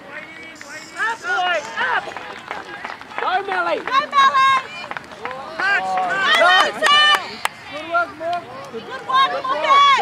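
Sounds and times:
spectators yelling encouragement: 0.0s - 10.0s.

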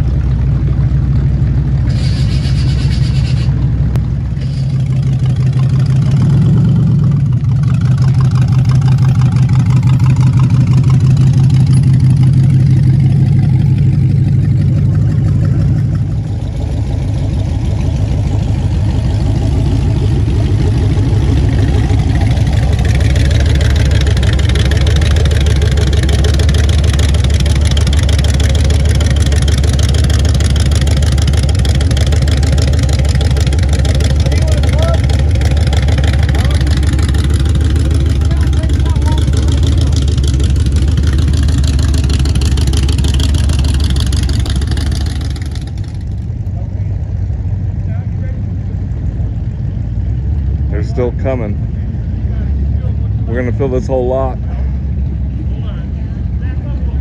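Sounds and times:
loud low car engines: 0.0s - 57.0s.

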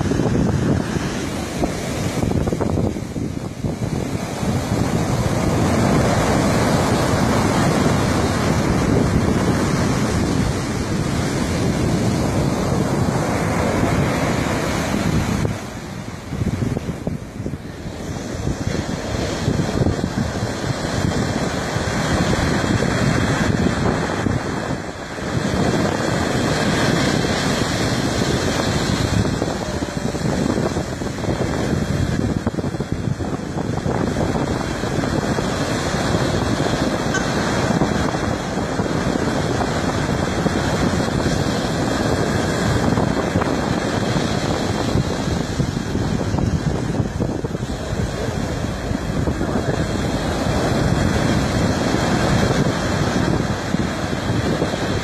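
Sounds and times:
surf breaking on beach: 0.0s - 55.0s
wind buffeting microphone: 0.0s - 55.0s.

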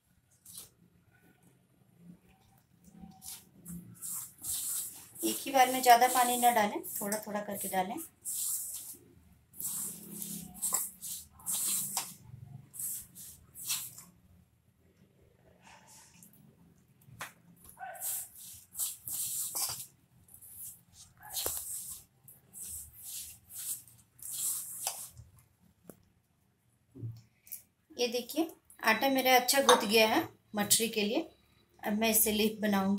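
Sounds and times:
hands kneading dough in steel bowl: 3.0s - 12.2s, 17.1s - 25.4s.

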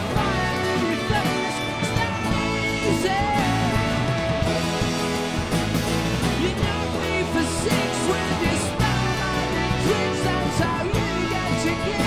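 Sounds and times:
brass section: 0.0s - 12.0s
drums: 0.0s - 12.0s
electric guitars: 0.0s - 12.0s.

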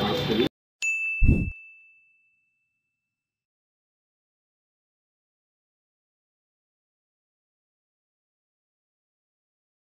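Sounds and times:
bright ding: 0.8s - 2.8s.

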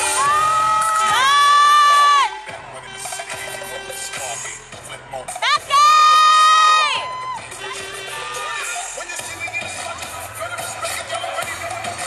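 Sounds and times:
crowd cheering: 0.0s - 2.8s, 5.4s - 9.3s
loud dance music: 0.0s - 12.0s.

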